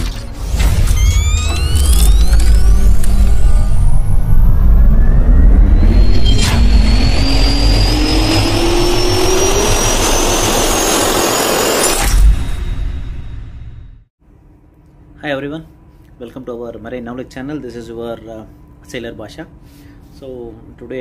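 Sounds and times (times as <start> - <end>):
sharp hit: 0.0 - 14.0
jet turbine spinning up: 0.5 - 13.7.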